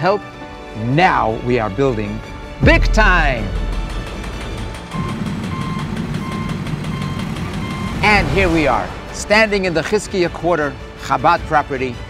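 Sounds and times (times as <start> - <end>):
vehicle engine running: 2.7 - 8.0
reversing alarm beeping: 4.9 - 8.2.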